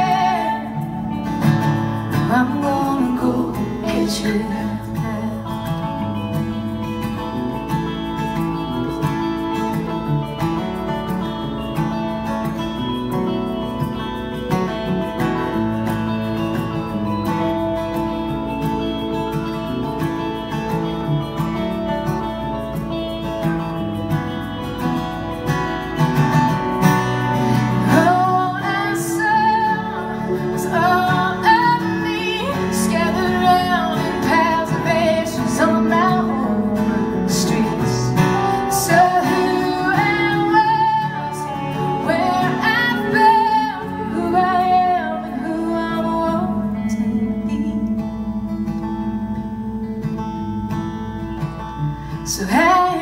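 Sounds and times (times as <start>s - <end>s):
electric guitar: 0.0s - 53.0s
strummed acoustic guitar: 0.0s - 53.0s.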